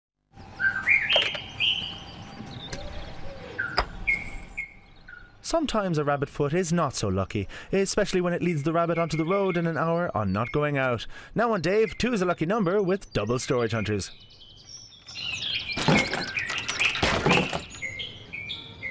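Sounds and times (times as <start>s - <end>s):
faint outdoor background: 0.2s - 18.9s
birds chirping and whistling: 0.4s - 6.3s, 7.3s - 18.9s
plastic toy car tipping over: 15.7s - 17.8s.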